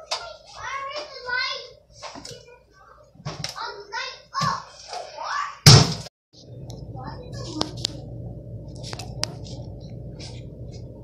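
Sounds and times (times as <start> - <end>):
steady low hum: 6.4 - 11.0.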